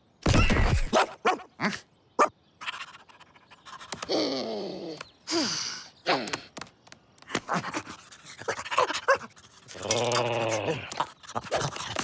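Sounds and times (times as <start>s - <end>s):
cartoon dog panting and grunting: 7.4s - 12.0s.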